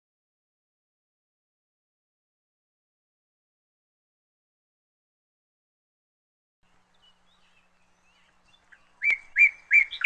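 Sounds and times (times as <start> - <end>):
birds chirping: 6.6 - 10.0.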